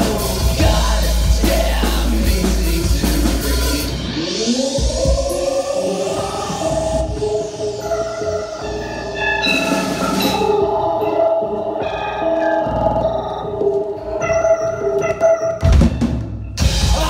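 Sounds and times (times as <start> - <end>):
drums: 0.0 - 17.0
live band playing loudly: 0.0 - 17.0
instrumental melodic line: 7.0 - 17.0.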